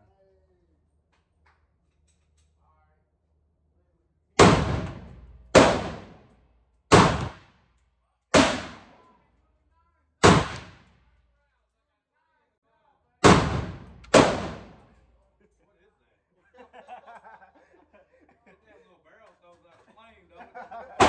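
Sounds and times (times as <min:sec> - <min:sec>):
gunshots with echo: 0:04.4 - 0:06.3, 0:06.9 - 0:07.5, 0:08.3 - 0:09.0, 0:10.2 - 0:10.9, 0:13.2 - 0:15.0.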